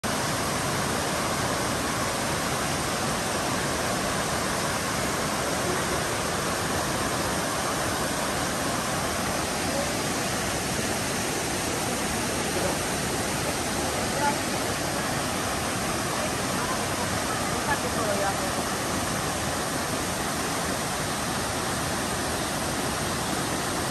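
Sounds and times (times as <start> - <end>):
waterfalls pouring into a pool: 0.0 - 23.9.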